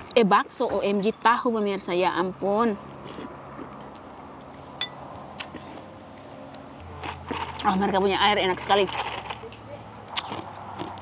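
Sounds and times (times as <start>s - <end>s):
tableware clinking: 4.8s - 5.0s.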